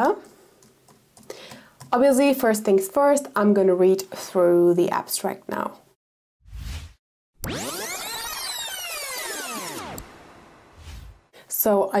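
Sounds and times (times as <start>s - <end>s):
electronic tones sweeping: 7.4s - 11.3s.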